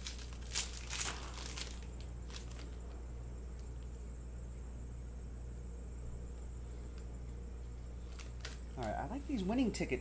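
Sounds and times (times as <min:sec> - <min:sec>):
foil wrapper crinkling: 0:00.0 - 0:03.9, 0:07.8 - 0:09.7
low electrical hum: 0:00.0 - 0:10.0.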